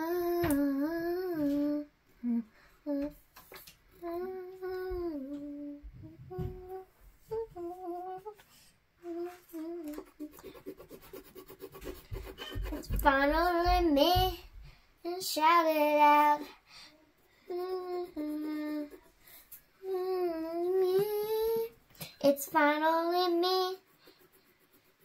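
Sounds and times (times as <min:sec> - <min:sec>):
girl humming: 0:00.0 - 0:03.2, 0:04.0 - 0:08.4, 0:09.0 - 0:10.5, 0:17.4 - 0:19.1, 0:19.8 - 0:21.8.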